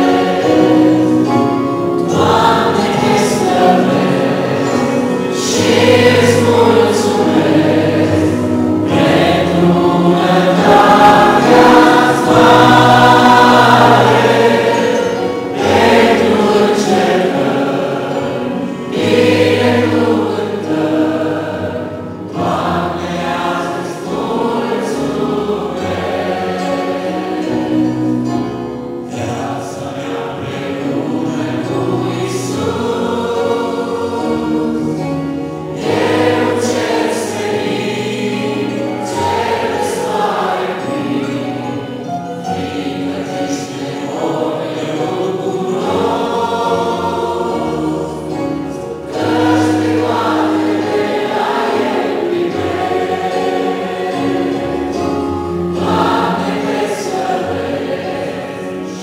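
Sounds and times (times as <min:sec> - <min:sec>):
electric keyboard: 0:00.0 - 0:59.0
mixed choir singing a hymn: 0:00.0 - 0:59.0.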